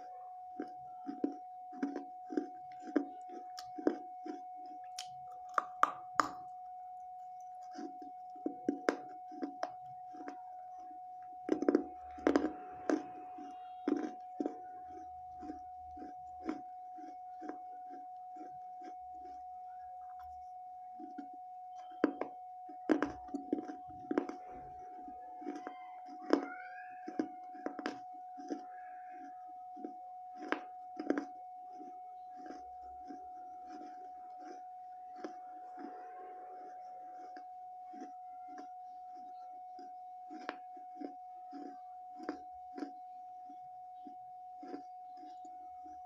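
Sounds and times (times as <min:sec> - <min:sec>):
crunching chews: 0:01.0 - 0:06.5
biting hard clay: 0:04.9 - 0:06.4.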